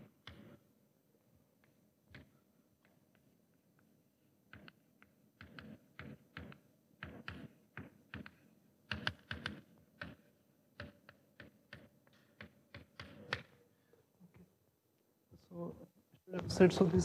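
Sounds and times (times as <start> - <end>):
chalk tapping on chalkboard: 4.5 - 13.6.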